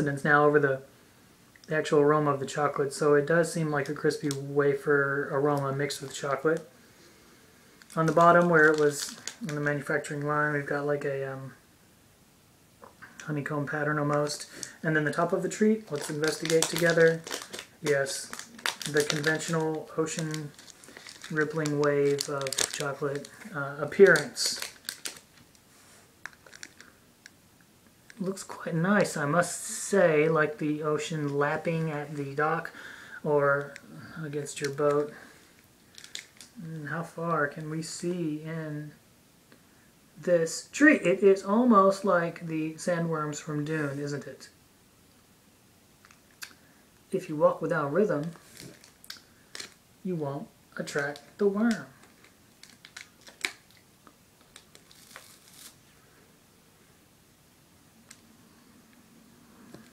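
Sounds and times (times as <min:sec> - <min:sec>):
foil wrapper clicks and ticks: 0:07.8 - 0:09.6, 0:15.9 - 0:25.6, 0:26.2 - 0:26.9, 0:35.9 - 0:36.6, 0:48.4 - 0:49.8, 0:51.1 - 0:55.8
crisp crunches of biting: 0:15.9 - 0:19.5.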